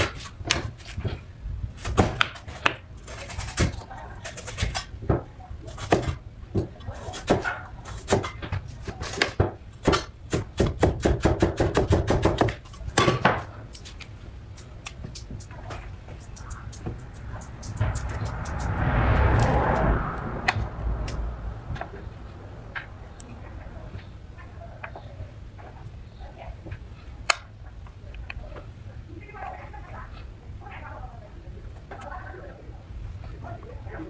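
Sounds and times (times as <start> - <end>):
low steady background rumble: 0.0 - 34.0
cleaver chopping on wooden board: 9.1 - 13.5.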